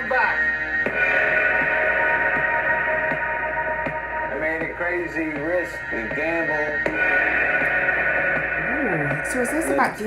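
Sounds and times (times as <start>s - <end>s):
sustained music tones: 0.0s - 10.0s
trailer dialogue: 0.0s - 10.0s.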